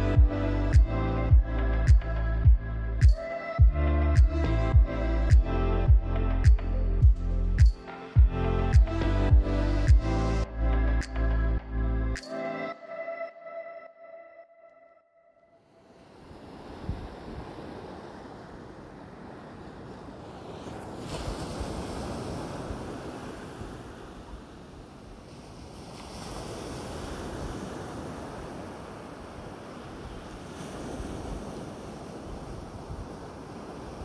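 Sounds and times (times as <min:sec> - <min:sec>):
ocean waves breaking on beach: 0:15.6 - 0:34.0.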